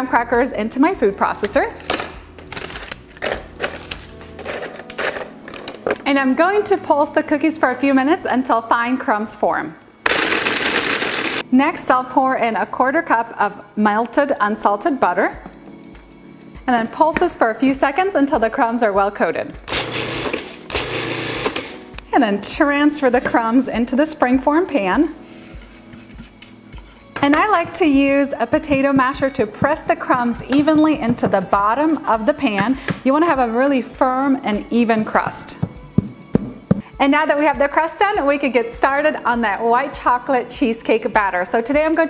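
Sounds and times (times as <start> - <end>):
soft background music: 0.0 - 42.0
crackers clacking into plastic bowl: 1.8 - 6.0
food processor motor running: 10.1 - 11.4, 19.7 - 21.8.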